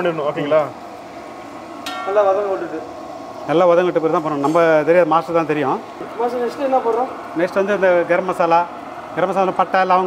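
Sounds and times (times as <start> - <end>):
metal ladle knocking on pot: 1.8 - 2.3.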